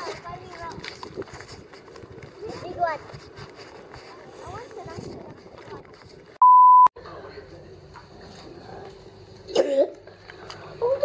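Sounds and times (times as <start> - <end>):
outdoor background noise: 0.0 - 11.0
electronic censor beep: 6.4 - 6.9.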